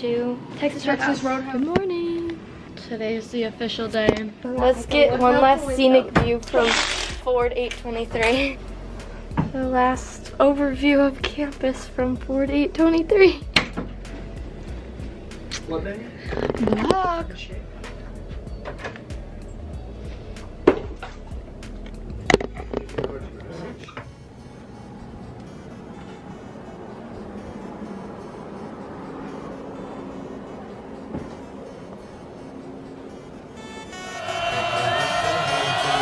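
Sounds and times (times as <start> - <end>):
loud music: 4.6 - 18.4, 33.6 - 36.0.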